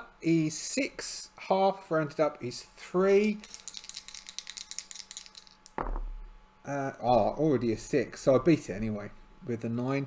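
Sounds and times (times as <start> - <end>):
dice rattling in tray: 3.4 - 6.0.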